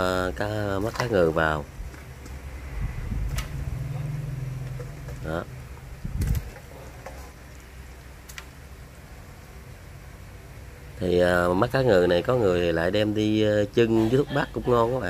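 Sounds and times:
pot boiling: 0.0 - 15.0.

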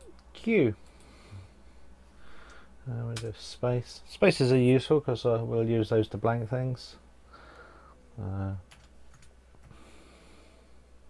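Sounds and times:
computer keyboard keys clicking: 8.7 - 9.3.

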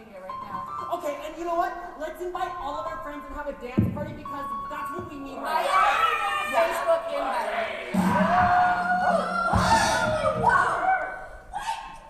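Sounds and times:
people whooping and shouting: 5.5 - 7.0, 7.8 - 12.0.

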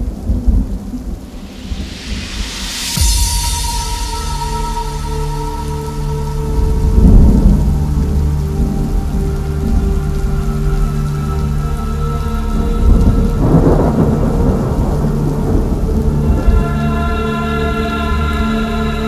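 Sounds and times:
rolling thunder: 0.0 - 10.8, 12.5 - 17.1
rain: 0.0 - 19.0
sustained synth chords: 2.9 - 19.0.

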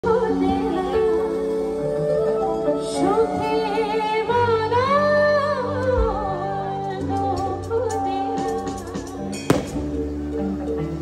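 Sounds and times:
live band playing: 6.8 - 11.0
sharp drum hit: 9.5 - 10.1.

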